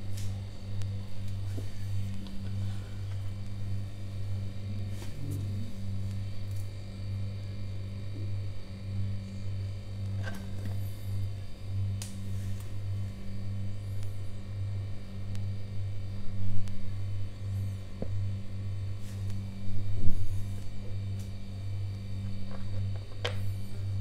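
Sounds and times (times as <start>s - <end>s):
low electrical hum: 0.0s - 24.0s.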